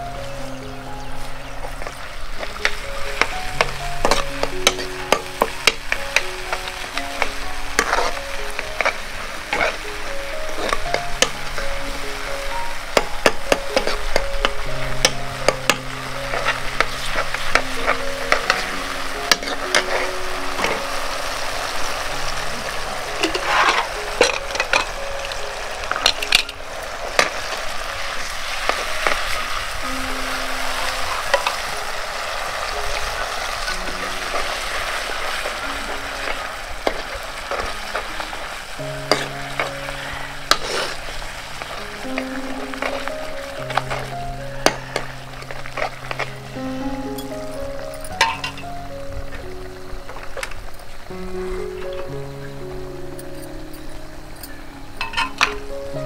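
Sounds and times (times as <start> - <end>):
liquid sizzling in a wok: 1.1 - 52.8
metal ladle scraping a pan: 6.5 - 9.9, 19.3 - 20.9, 23.2 - 25.0, 39.0 - 41.1, 48.2 - 48.6.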